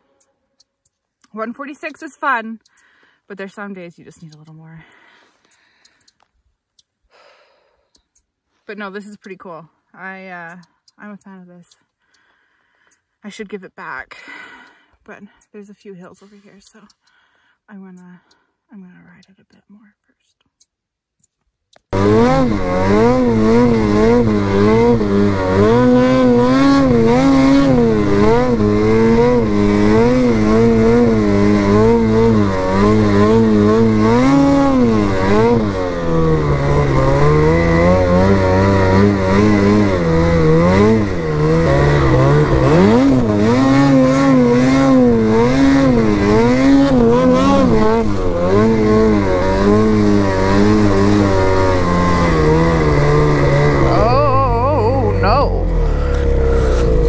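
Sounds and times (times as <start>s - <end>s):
snowmobile engine revving: 21.9s - 57.0s.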